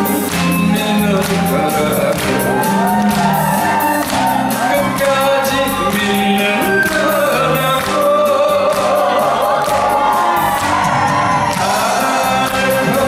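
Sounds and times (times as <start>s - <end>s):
backing track with steady beat: 0.0s - 13.0s
man singing into a microphone: 0.1s - 3.0s, 4.6s - 9.7s, 11.6s - 13.0s.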